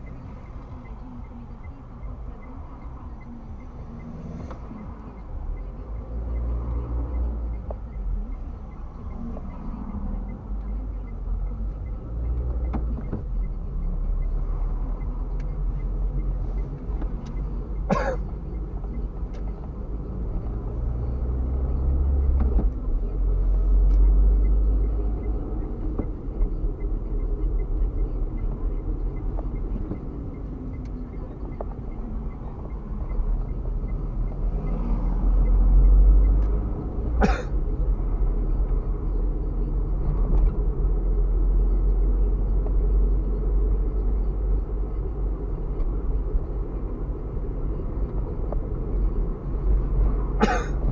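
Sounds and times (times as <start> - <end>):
car engine and road noise: 0.0 - 50.9.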